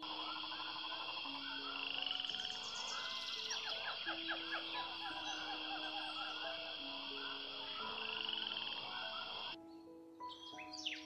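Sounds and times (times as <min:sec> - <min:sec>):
frog chorus trilling: 0:00.0 - 0:09.6
background music: 0:00.0 - 0:11.0.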